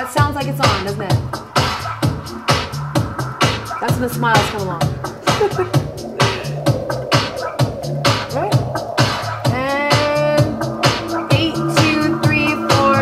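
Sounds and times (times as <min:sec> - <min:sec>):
dj mix with steady beat: 0:00.0 - 0:13.0.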